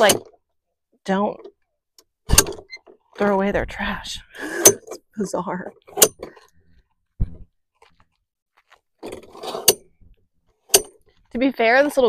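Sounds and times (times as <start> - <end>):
dull thump: 2.3 - 2.7, 7.2 - 7.5
metal table clattering: 10.7 - 11.0.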